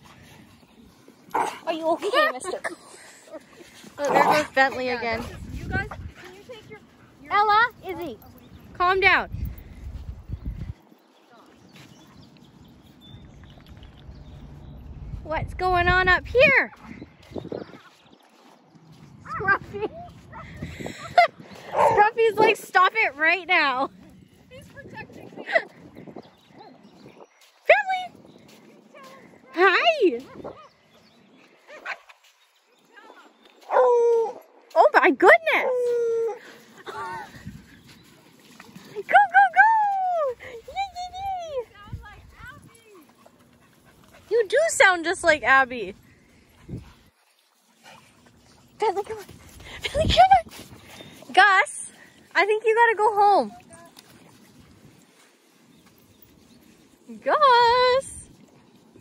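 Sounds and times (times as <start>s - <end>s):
dogs playing on sand: 0.0s - 59.0s
wind rumble on microphone: 3.8s - 11.0s, 11.7s - 31.4s, 35.6s - 43.0s, 45.1s - 47.1s, 48.7s - 51.4s.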